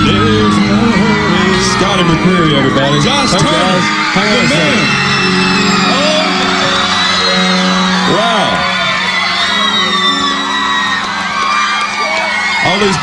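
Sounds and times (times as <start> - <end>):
band holding sustained chord: 0.0 - 12.0
crowd cheering and screaming: 0.0 - 13.0.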